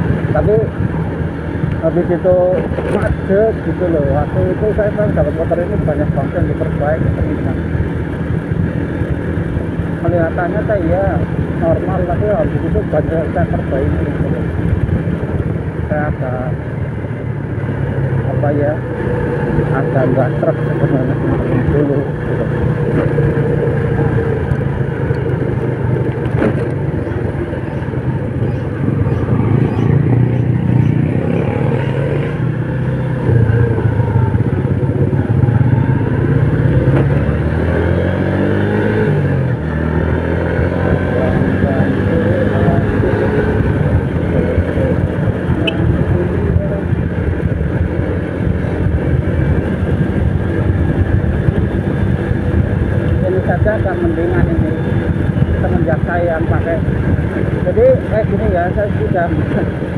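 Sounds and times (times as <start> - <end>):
motorcycle engine running: 0.0 - 59.9
wind rushing over microphone: 0.0 - 59.9.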